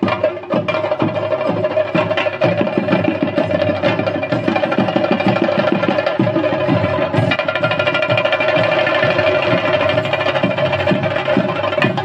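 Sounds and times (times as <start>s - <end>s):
drums beating fast: 0.0s - 12.0s.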